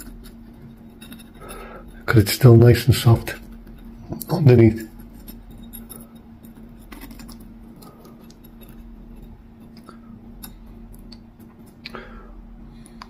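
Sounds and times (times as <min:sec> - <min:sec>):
faint steady hum: 0:00.0 - 0:13.0.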